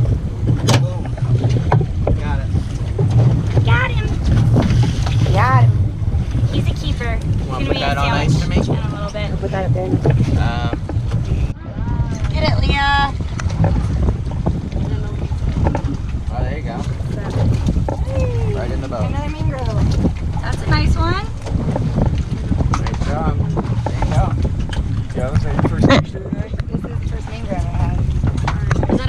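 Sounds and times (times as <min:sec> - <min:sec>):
wind buffeting microphone: 0:00.0 - 0:29.0
people talking: 0:03.6 - 0:04.2, 0:05.2 - 0:05.7, 0:06.5 - 0:13.2, 0:16.3 - 0:21.3, 0:22.8 - 0:24.4, 0:25.2 - 0:29.0.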